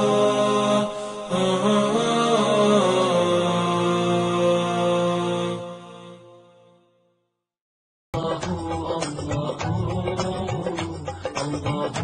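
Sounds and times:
vocal chant with long notes: 0.0 - 7.1, 8.2 - 12.0.

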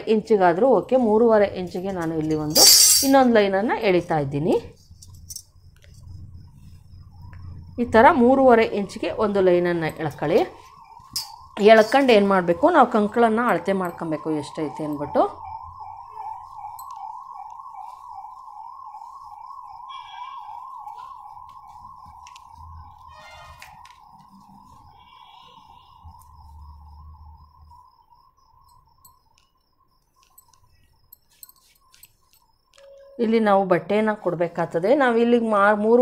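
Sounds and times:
siren wailing: 5.6 - 29.1, 32.7 - 36.0.

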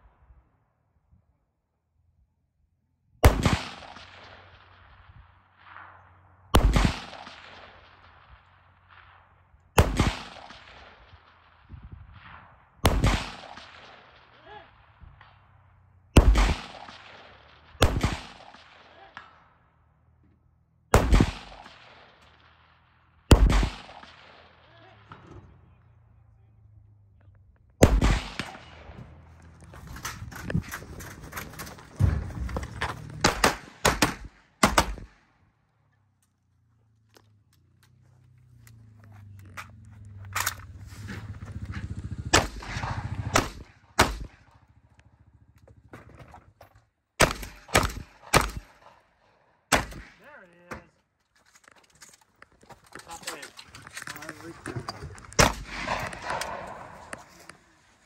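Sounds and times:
echoing gunshots: 3.2 - 20.0, 20.9 - 25.8, 27.8 - 35.7, 40.4 - 45.4, 47.2 - 50.4, 55.2 - 58.0.

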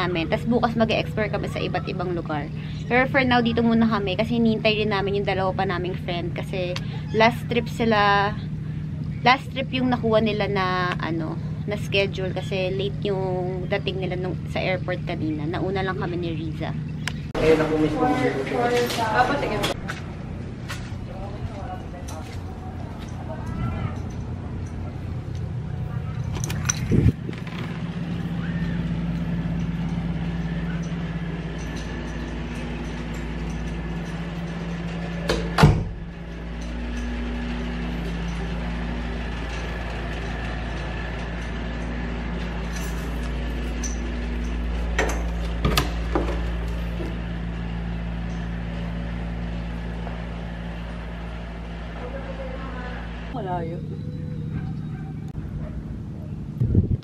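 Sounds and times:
low mechanical hum: 0.0 - 57.0.

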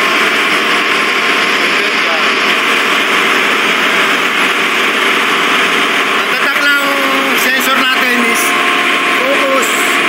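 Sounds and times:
engine room machinery noise: 0.0 - 10.0.

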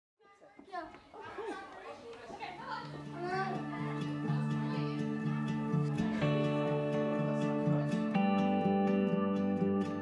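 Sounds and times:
children chattering: 0.2 - 8.3.

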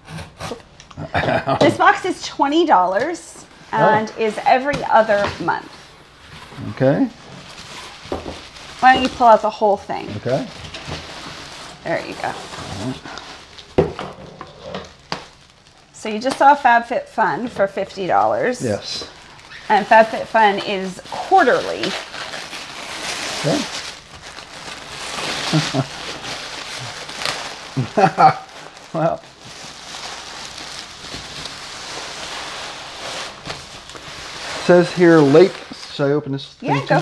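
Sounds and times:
bubble wrap crinkling: 1.7 - 37.0
bubble wrap crackles: 1.8 - 37.0.

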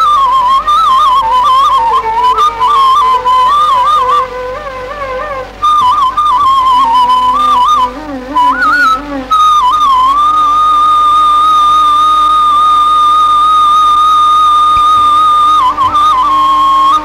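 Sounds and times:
bamboo flute melody: 0.0 - 17.0.

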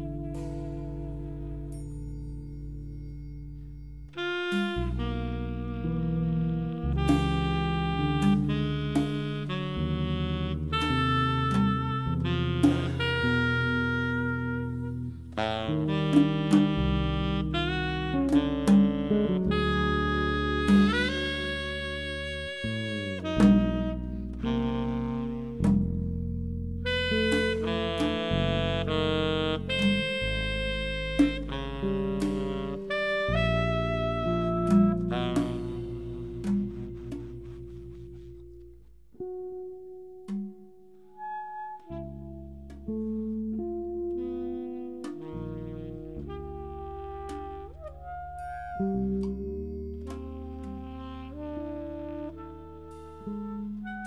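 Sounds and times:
jazz ensemble with saxophone: 0.0 - 54.0.

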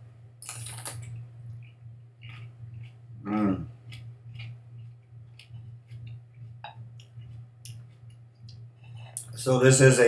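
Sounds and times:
crisp bite into chili: 0.4 - 1.1
wet crunching chewing: 0.4 - 9.3.

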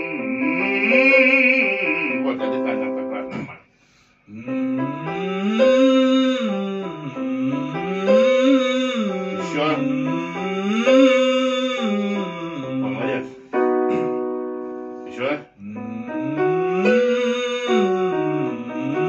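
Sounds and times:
keyboard playing notes: 0.0 - 3.5, 4.4 - 19.0
man singing vocal scales: 0.0 - 3.5, 4.3 - 14.2, 15.1 - 19.0.

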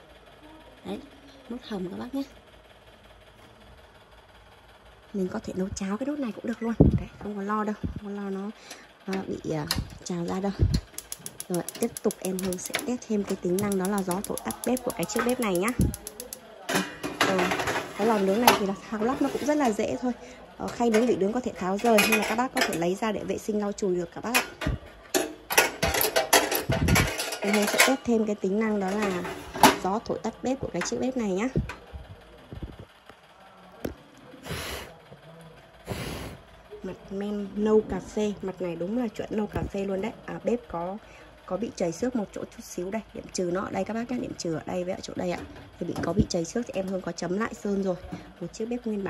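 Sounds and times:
wire grill rack clinking: 10.8 - 18.6, 25.2 - 28.1.

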